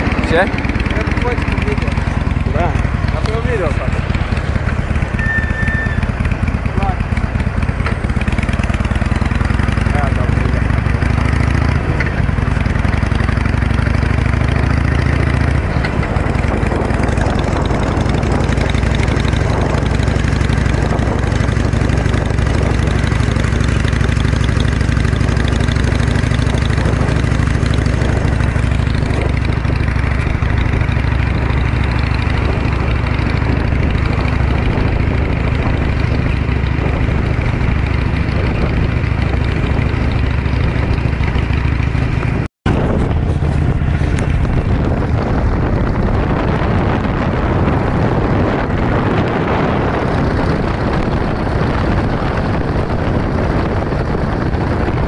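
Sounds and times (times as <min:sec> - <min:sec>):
motorcycle engine idling and riding: 0:00.0 - 0:55.0.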